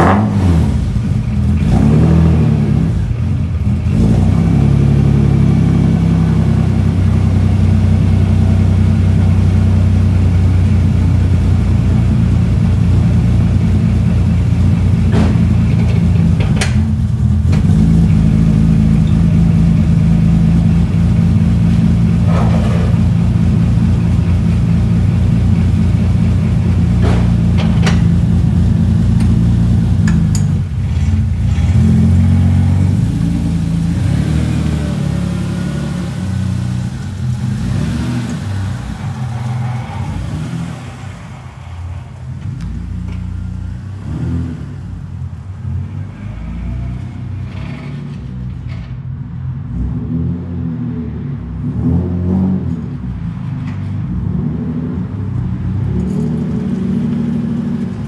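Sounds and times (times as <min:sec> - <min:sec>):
car engine idling: 0:00.0 - 0:46.0
car pulling away: 0:00.0 - 0:48.7, 0:51.6 - 0:58.0.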